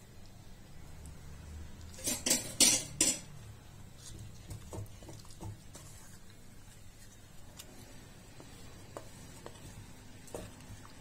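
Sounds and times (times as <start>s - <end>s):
spoon scraping metal pot: 1.9s - 3.3s.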